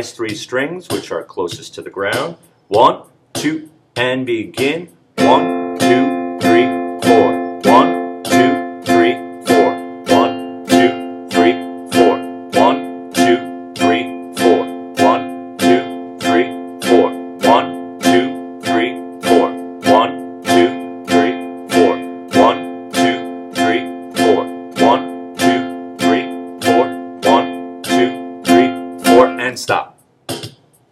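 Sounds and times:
classical guitar strumming chord: 5.2 - 29.4.

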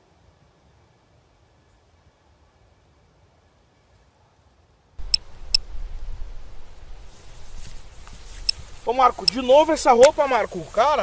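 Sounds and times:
low rumble: 5.0 - 8.9
short sharp high clicks: 8.3 - 10.2.

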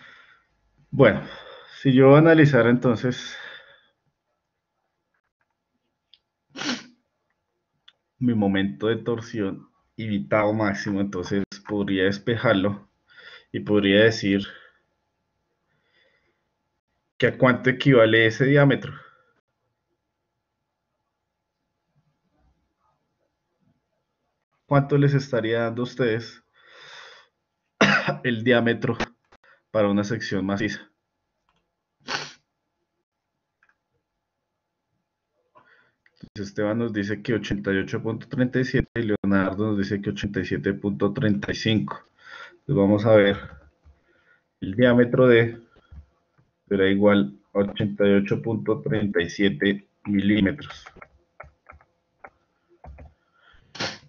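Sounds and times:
sharp burst of breath: 0.0 - 0.5, 6.6 - 6.9, 32.0 - 32.4
person speaking: 0.9 - 3.6, 8.2 - 12.8, 13.5 - 14.6, 36.3 - 43.6, 44.6 - 46.0, 46.7 - 51.8, 52.8 - 53.1
person sneezing: 6.6 - 7.0, 27.8 - 28.2, 32.1 - 32.4, 53.7 - 54.0.

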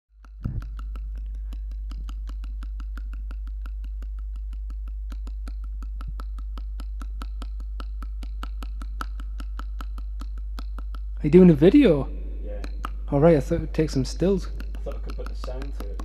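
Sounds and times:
fast regular ticking: 0.1 - 16.0
steady low hum: 0.2 - 16.0.

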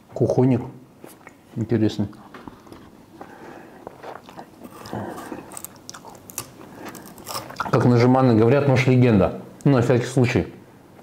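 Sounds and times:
man chewing melon: 2.1 - 7.9.

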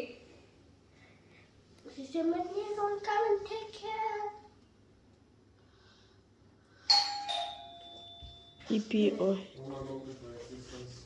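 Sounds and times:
doorbell chime: 6.9 - 8.8.

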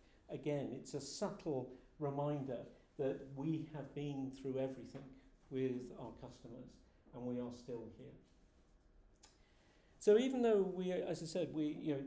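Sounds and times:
faint short click: 9.2 - 9.5.

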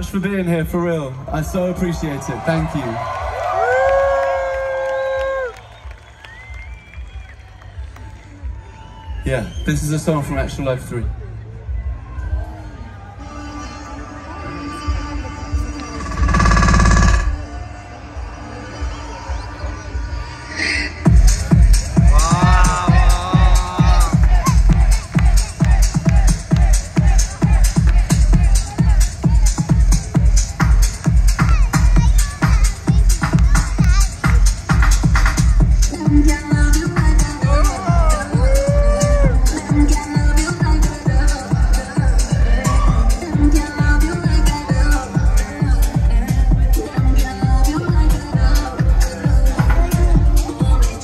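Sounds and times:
loud electronic music: 12.8 - 51.0
heavy bass stuttering burst: 15.9 - 17.5
steady kick drum: 21.0 - 50.9.

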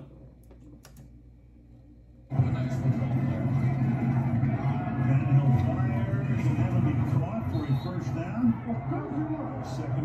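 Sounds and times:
stadium crowd noise: 2.3 - 10.0.

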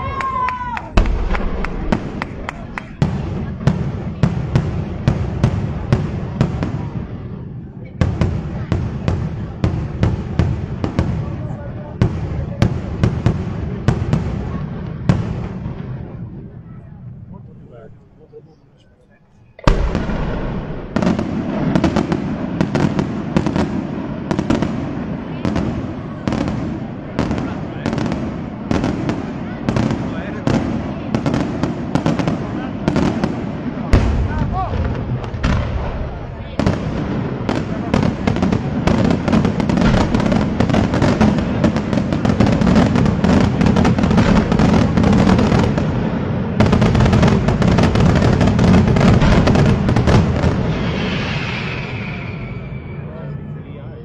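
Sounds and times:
fireworks bangs: 0.0 - 18.1, 19.2 - 53.3.

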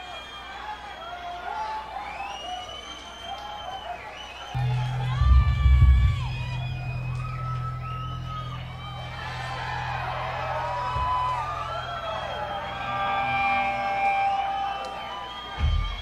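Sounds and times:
crowd cheering and whistling: 0.0 - 16.0
steady low hum: 4.6 - 12.3.

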